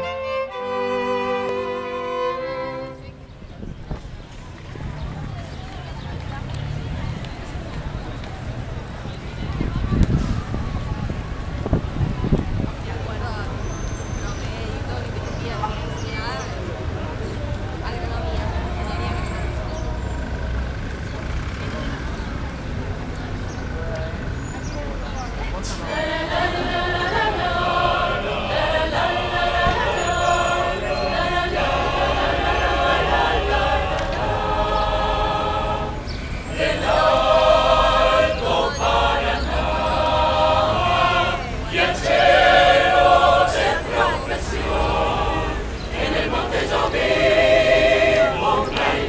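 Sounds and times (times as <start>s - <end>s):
choir singing a cappella: 0.0s - 3.2s, 25.6s - 49.0s
indistinct voices: 0.0s - 49.0s
low rumble of traffic: 0.0s - 49.0s.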